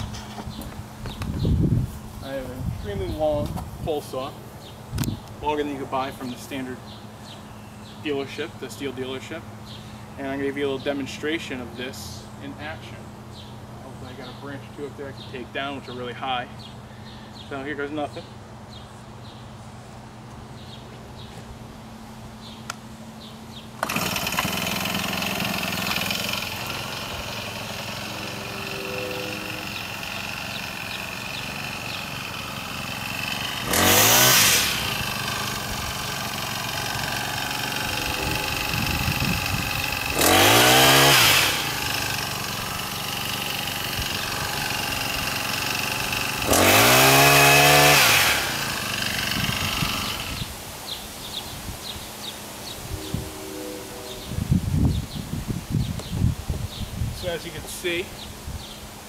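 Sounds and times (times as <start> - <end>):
saw cutting branches: 23.7 - 50.6
pole saw engine revving: 23.8 - 50.5.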